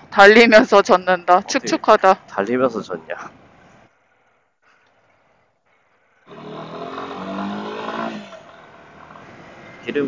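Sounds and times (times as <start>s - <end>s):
motorcycle engine accelerating: 6.3s - 10.0s.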